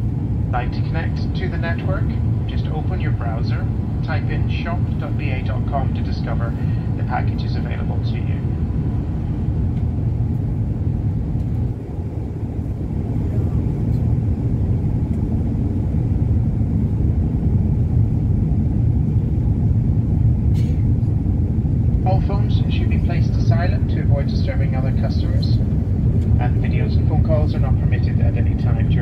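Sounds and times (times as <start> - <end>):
airliner cabin engine rumble: 0.0 - 29.0.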